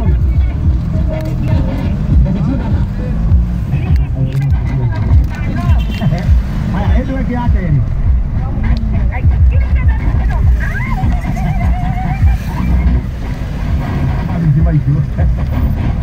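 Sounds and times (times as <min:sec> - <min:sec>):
radio voice talking: 0:00.0 - 0:13.0, 0:14.1 - 0:15.5
engine and road rumble: 0:00.0 - 0:16.0.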